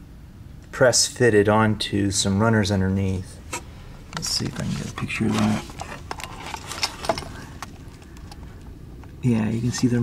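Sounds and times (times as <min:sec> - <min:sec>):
low steady background noise: 0:00.0 - 0:10.0.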